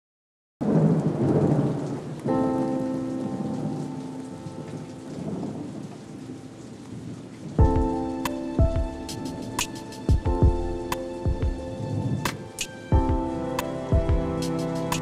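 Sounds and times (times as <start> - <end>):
thunder crash: 0.6 - 2.6
heavy rain falling: 0.6 - 15.0
held musical chord: 7.6 - 15.0.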